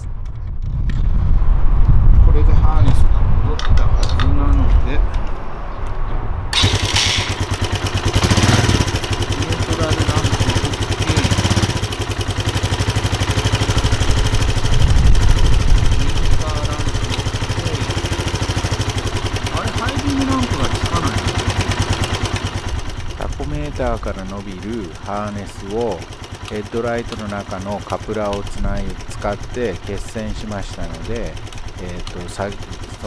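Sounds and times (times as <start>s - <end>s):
motorcycle engine idling: 6.6s - 33.0s.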